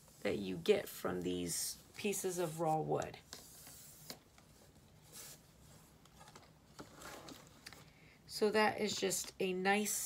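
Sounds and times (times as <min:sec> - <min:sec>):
soft rustles and scrapes: 0:00.0 - 0:07.9.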